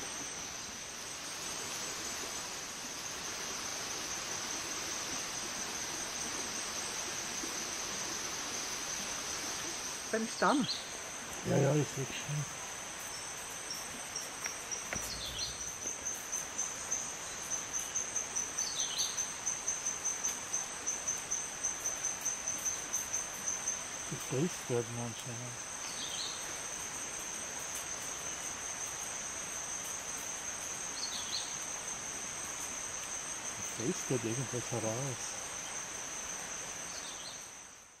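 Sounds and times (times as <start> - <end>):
faint hiss: 0.0 - 38.0
insects chirring: 0.0 - 38.0.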